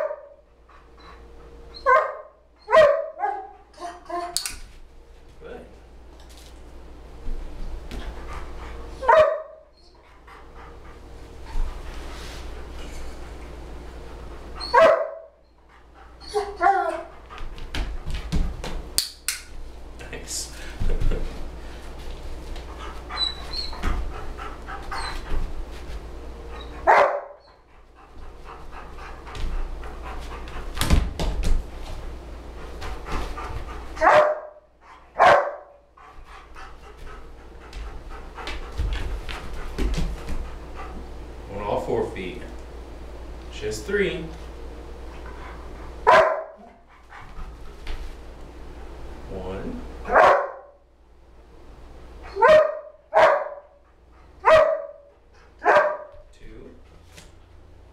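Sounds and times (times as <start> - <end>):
dog barking: 0.0 - 0.4, 1.8 - 3.5, 9.0 - 9.7, 14.7 - 15.4, 26.8 - 27.4, 34.0 - 34.6, 35.2 - 35.8, 46.0 - 46.8, 50.1 - 50.8, 52.3 - 53.8, 54.4 - 56.2
dog panting: 7.9 - 9.1, 9.8 - 14.8, 15.6 - 18.3, 21.1 - 30.8, 31.9 - 34.1, 34.8 - 41.4, 45.1 - 48.0
paws knocking on books: 37.7 - 40.6.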